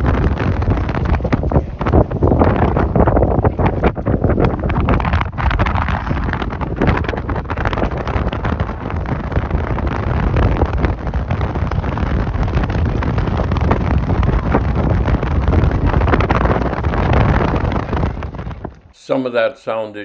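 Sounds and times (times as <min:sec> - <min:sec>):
gusty wind buffeting microphone: 0:00.0 - 0:19.0.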